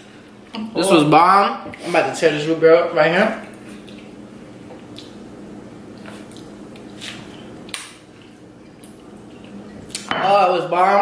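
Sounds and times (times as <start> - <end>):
low steady hum: 0.0 - 11.0
wet chewing: 3.4 - 10.1
soft mouth smacks: 4.7 - 5.2, 6.0 - 10.1.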